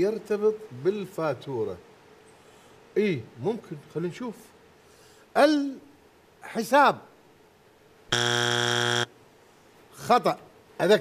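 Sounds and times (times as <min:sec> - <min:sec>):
harsh wrong-answer buzzer: 0:08.1 - 0:09.1.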